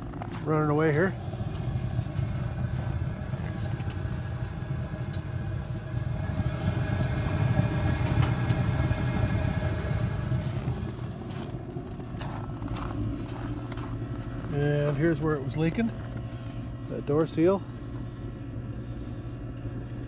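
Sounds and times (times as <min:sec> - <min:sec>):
burner blower and flame roaring: 0:00.0 - 0:20.0.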